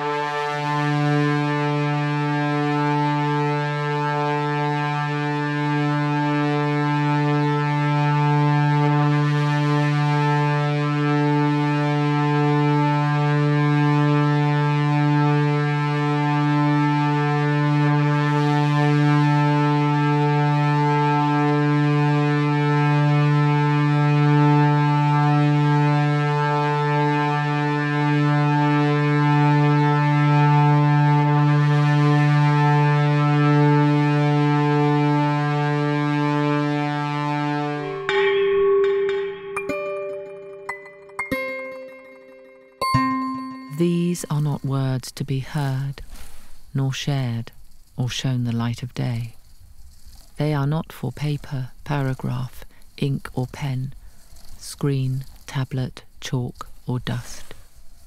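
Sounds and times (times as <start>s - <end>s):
low electronic drone: 0.0s - 45.0s
faint hiss: 43.8s - 58.0s.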